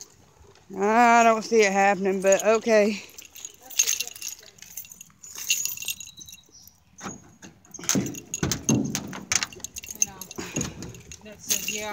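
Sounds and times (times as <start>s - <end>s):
keys jingling: 2.0s - 11.9s
truck door handle and latch clunking: 7.0s - 11.2s.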